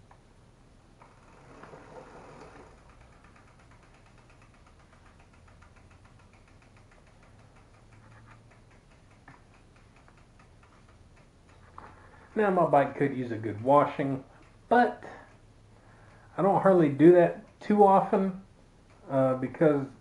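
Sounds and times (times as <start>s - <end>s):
bicycle freewheel ticking: 1.0s - 20.0s.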